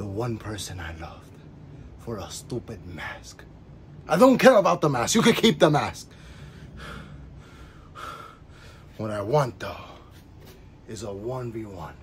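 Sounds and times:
man breathing: 6.1 - 9.0.

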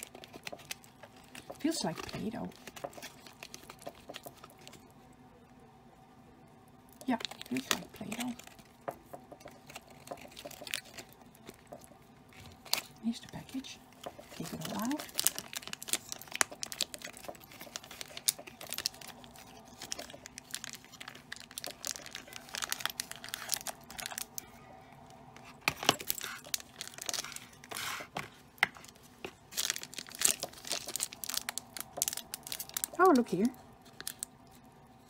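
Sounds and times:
plastic packets crinkling and tearing: 0.0 - 4.8, 6.9 - 8.9, 9.5 - 24.5, 25.4 - 34.6.

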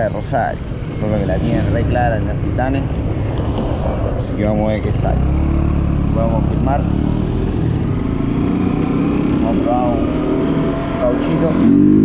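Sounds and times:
wind rumbling on microphone: 2.0 - 5.0.

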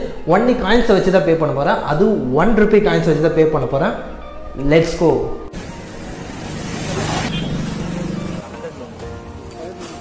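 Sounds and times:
street noise: 5.5 - 10.0.

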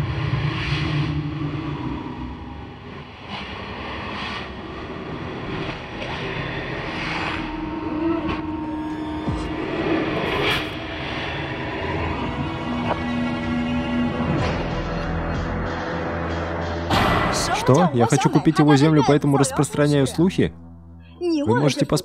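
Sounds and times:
sudden musical hits: 0.0 - 21.2
low rumbling drone: 0.0 - 22.0
held tone: 4.6 - 14.0, 17.1 - 22.0.

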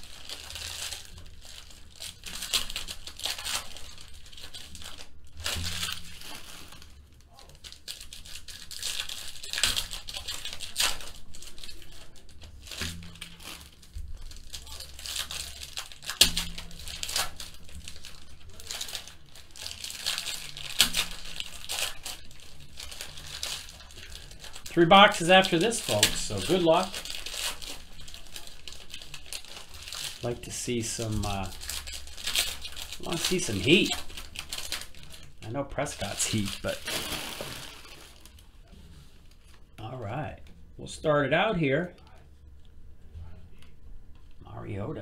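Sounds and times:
foil wrappers crinkling and tearing: 0.0 - 40.4.

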